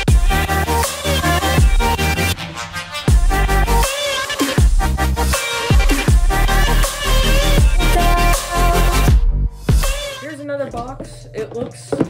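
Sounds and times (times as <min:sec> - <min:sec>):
background music with low beat: 0:00.0 - 0:12.0.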